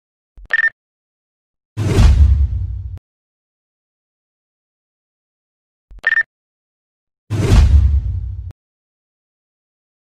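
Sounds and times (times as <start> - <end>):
whoosh and boom effect: 1.8 - 3.0, 7.3 - 8.5.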